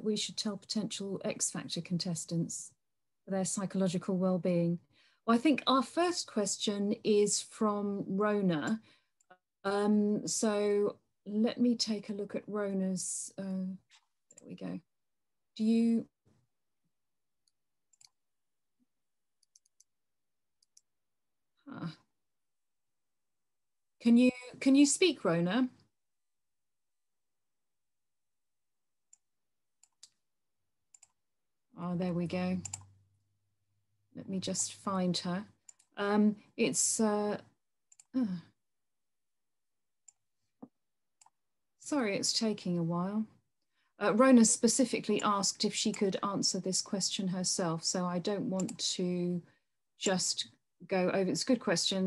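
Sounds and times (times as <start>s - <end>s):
computer mouse clicks: 17.4s - 18.2s, 19.4s - 19.9s, 20.6s - 20.9s, 29.8s - 30.2s, 30.9s - 31.2s, 32.6s - 33.0s, 35.6s - 36.0s, 45.2s - 46.1s, 48.6s - 48.8s.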